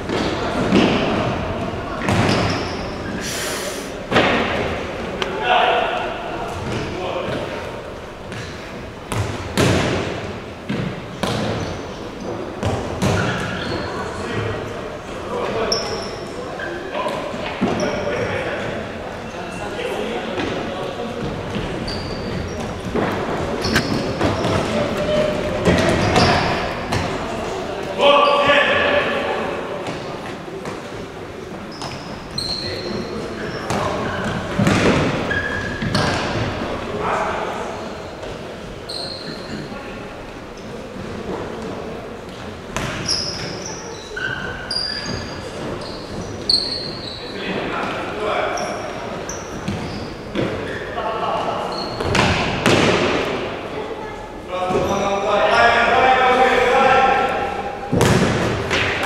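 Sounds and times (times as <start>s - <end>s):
shoes squeaking on floor: 0.0s - 3.4s, 10.7s - 14.6s, 15.4s - 19.8s, 20.4s - 28.6s, 31.5s - 36.6s, 38.0s - 41.3s, 42.5s - 52.7s, 54.6s - 56.0s.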